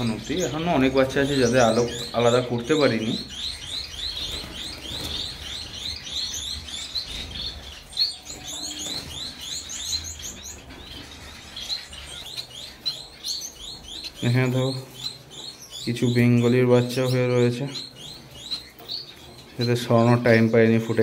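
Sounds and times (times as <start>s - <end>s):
finches chirping: 0.0s - 21.0s.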